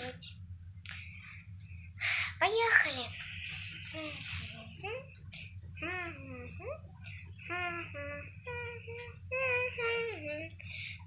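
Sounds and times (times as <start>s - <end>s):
girl singing lullaby: 5.8s - 11.0s.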